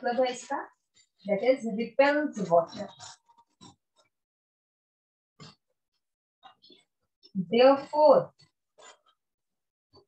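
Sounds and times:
marker squeaking on whiteboard: 2.3s - 4.2s, 6.4s - 7.1s, 8.4s - 9.2s.

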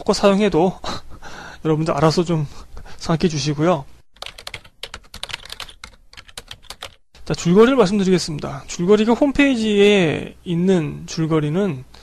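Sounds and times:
keyboard typing clicks: 4.2s - 7.0s.

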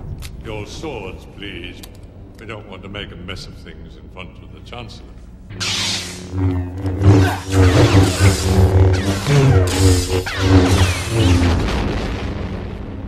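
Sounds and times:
lightsabers humming and clashing: 5.5s - 12.0s.

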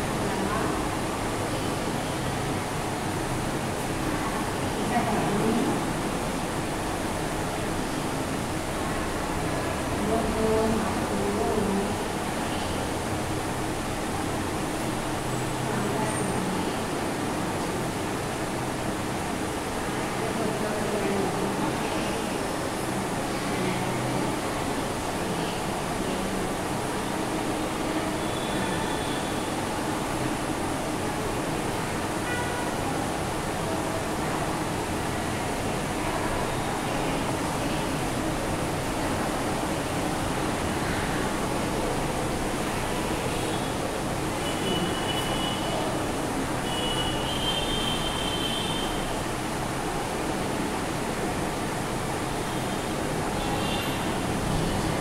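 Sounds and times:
steady background noise: 0.0s - 55.0s.

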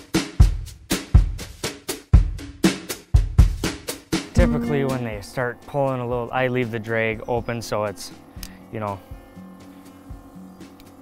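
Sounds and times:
drum-kit beat: 0.0s - 5.3s.

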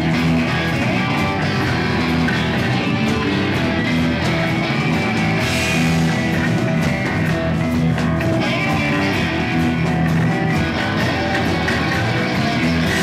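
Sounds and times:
bass guitar: 0.0s - 13.0s
drum kit: 0.0s - 13.0s
electric guitars: 0.0s - 13.0s.

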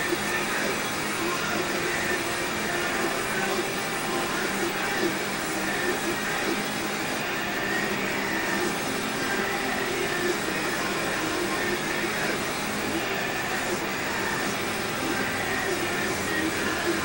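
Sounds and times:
steady rushing noise: 0.0s - 17.0s.

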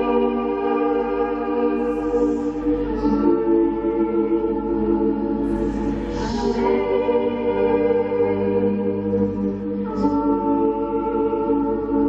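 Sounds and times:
ambient music drones: 0.0s - 12.0s
woman singing: 0.0s - 12.0s.

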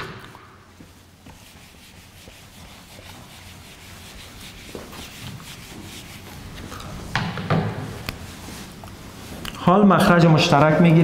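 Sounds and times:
whiteboard eraser rubbing: 0.9s - 7.4s.

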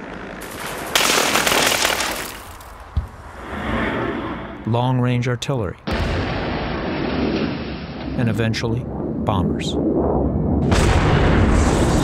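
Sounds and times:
rocket launch rushing blast: 10.5s - 12.0s.

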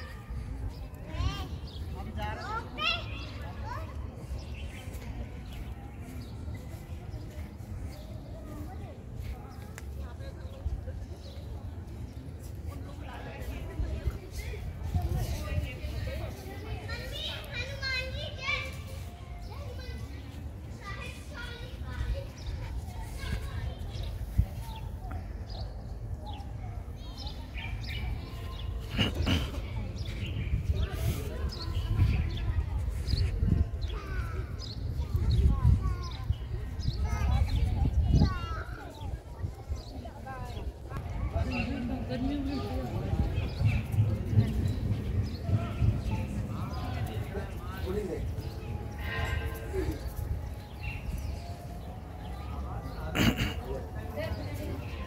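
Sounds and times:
indistinct voices: 39.8s - 55.0s.

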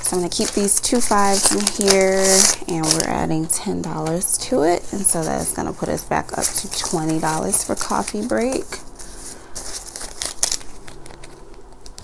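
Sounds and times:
paper banknotes rustling: 0.0s - 12.0s.

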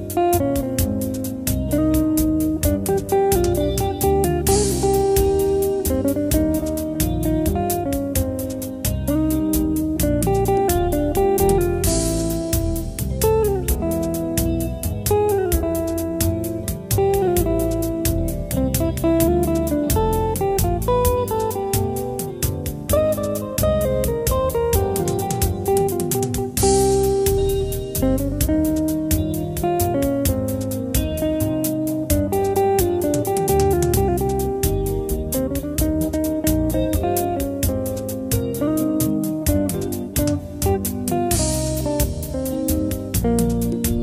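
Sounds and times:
lead guitar melody: 0.0s - 44.0s
steady beat: 0.0s - 44.0s.

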